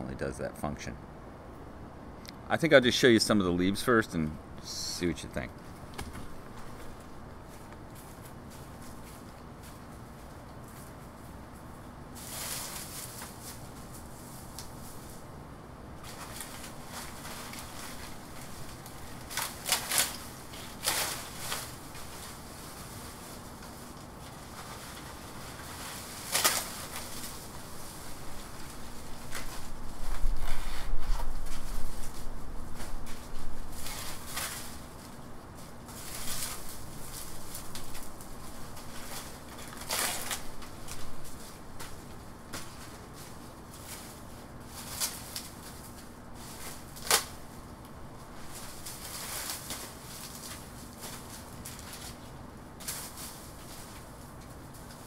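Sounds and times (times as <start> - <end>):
dry fronds rustling and crackling: 4.6 - 55.0.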